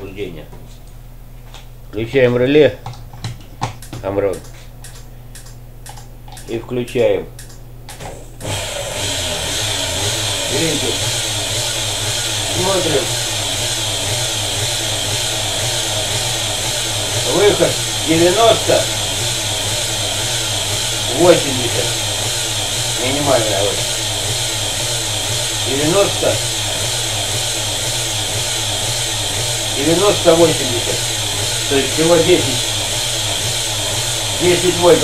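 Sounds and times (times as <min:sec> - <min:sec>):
steady electric hum: 0:00.0 - 0:13.1
even motor whir: 0:07.4 - 0:35.0.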